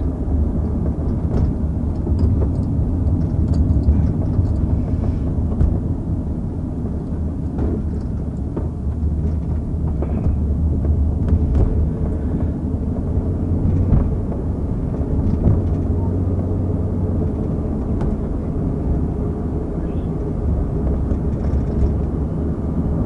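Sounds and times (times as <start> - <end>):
car engine rumble from inside: 0.0 - 23.0.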